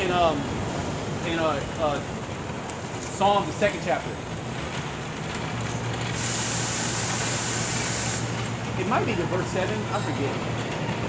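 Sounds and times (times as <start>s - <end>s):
large vehicle engine humming: 0.0s - 11.0s
steady hiss: 6.1s - 9.0s.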